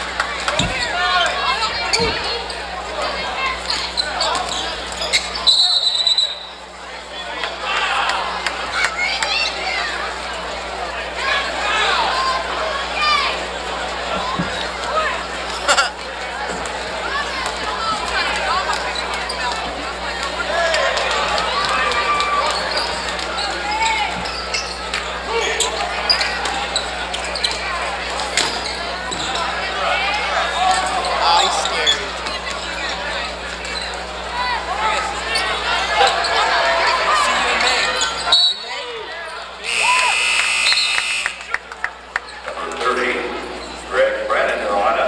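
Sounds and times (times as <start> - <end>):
crowd voices and shouting: 0.0 - 45.0
sneaker squeaks on hardwood: 0.6 - 2.6, 3.6 - 6.6, 22.5 - 27.6, 28.4 - 29.5
referee's whistle: 5.2 - 6.7, 38.2 - 38.7, 39.6 - 41.5
steady electrical hum: 19.7 - 45.0.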